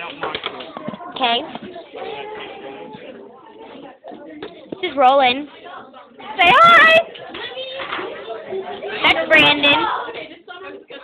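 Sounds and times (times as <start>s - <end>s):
children talking at once: 0.0s - 11.0s.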